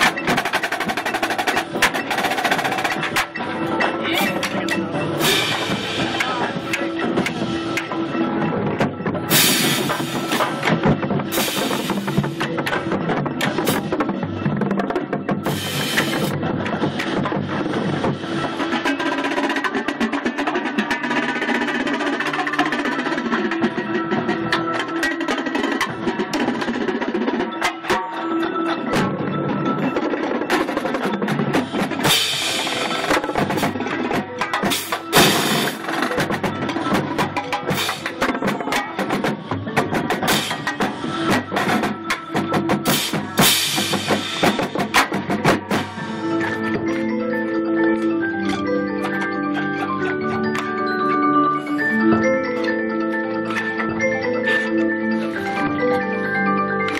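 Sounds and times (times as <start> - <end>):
marching bass drums: 0.0 - 27.8, 28.7 - 47.1
snare drums rolling: 28.9 - 47.0.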